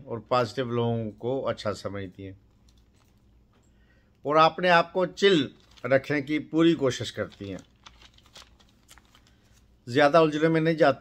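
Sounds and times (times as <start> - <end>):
man talking: 0.0 - 2.4, 4.2 - 7.7, 9.8 - 11.0.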